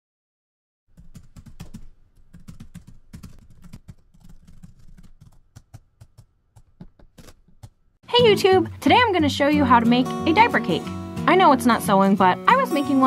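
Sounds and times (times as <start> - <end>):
rapid keyboard typing: 0.9 - 7.8.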